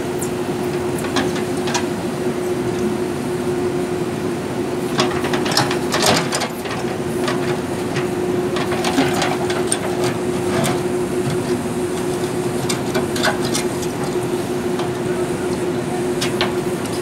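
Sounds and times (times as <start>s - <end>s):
diesel engine running: 0.0s - 17.0s.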